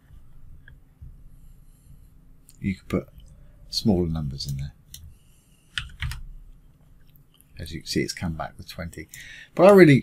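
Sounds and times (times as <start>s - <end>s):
computer keyboard keystrokes: 5.8s - 6.2s.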